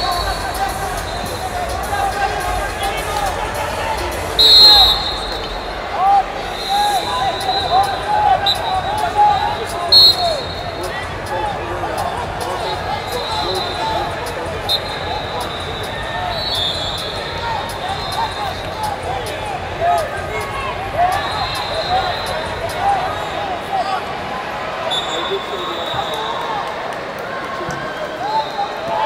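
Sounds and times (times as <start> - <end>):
hubbub of voices: 0.0 - 29.0
high whistle blasts: 4.4 - 5.7, 6.5 - 10.8, 12.6 - 18.8, 21.0 - 23.4, 24.9 - 26.5
shoe soles squeaking on mats: 14.7 - 18.6.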